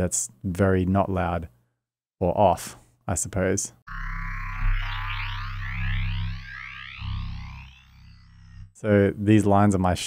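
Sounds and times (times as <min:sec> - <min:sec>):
hissy metallic synth sweeps: 0:03.9 - 0:08.7
metallic synth bass note: 0:03.9 - 0:08.8.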